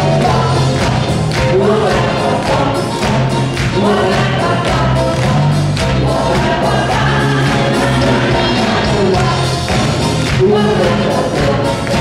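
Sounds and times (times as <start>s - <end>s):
live pop band playing: 0.0s - 12.0s
voices singing together: 0.0s - 12.0s.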